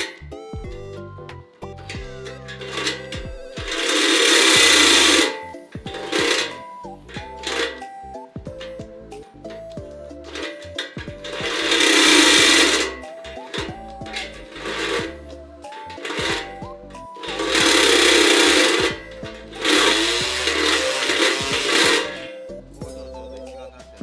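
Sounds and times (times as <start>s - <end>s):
cordless drill drilling into metal: 2.3s - 6.8s, 10.3s - 15.2s, 15.8s - 22.4s.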